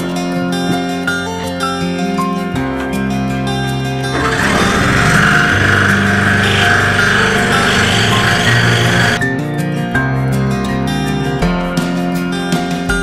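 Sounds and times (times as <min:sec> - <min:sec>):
scroll saw cutting wood: 0:04.2 - 0:09.2.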